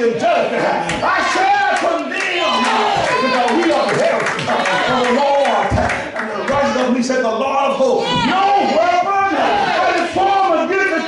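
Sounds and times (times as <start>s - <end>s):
people shouting: 0.5s - 7.0s, 7.7s - 11.0s.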